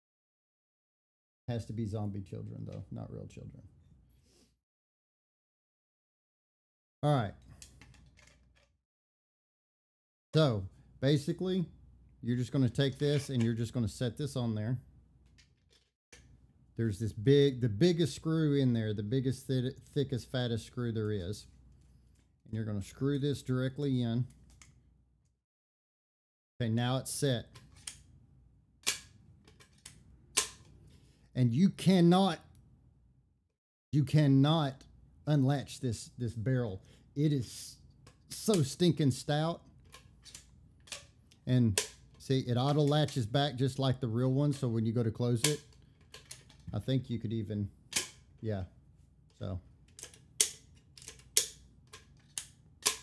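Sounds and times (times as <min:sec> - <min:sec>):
sharp plastic click: 0:49.9 - 0:53.0.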